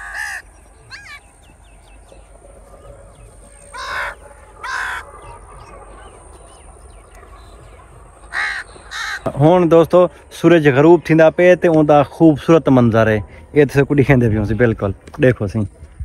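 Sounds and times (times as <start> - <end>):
crows cawing: 0.0 - 1.3, 3.6 - 5.5, 8.3 - 9.3.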